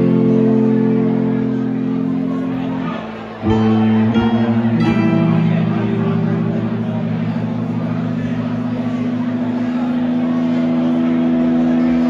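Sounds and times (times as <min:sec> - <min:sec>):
electric guitars droning chord: 0:00.0 - 0:12.0.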